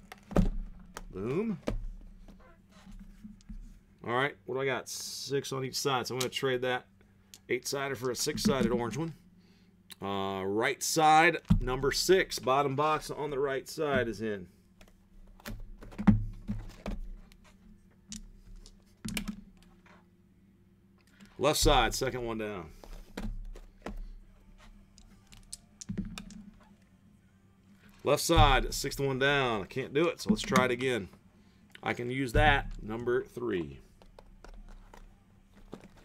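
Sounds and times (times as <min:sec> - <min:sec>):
low steady hum: 0:00.0 - 0:36.0
cardboard boxes knocking and sliding: 0:21.6 - 0:22.2.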